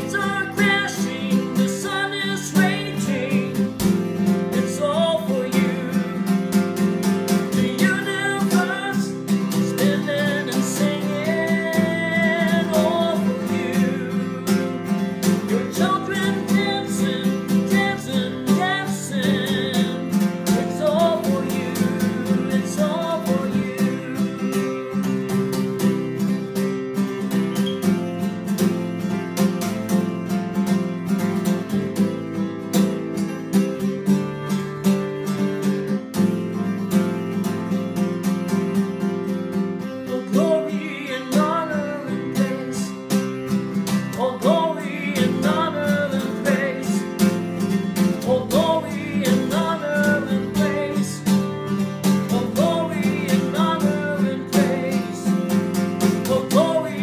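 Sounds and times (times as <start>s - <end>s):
man singing: 0.0s - 25.8s, 40.0s - 57.0s
acoustic guitar strumming chords: 0.0s - 57.0s.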